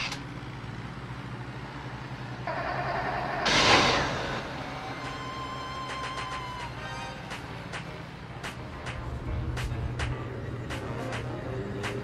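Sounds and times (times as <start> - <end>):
car engine running: 0.0 - 6.6.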